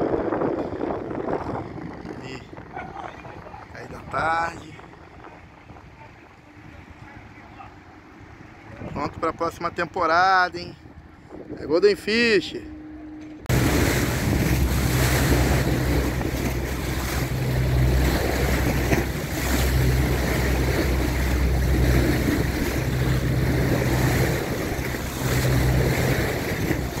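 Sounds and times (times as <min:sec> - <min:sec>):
boat engine droning: 0:00.0 - 0:27.0
water rushing along boat hull: 0:00.0 - 0:27.0
wind buffeting microphone: 0:00.0 - 0:27.0.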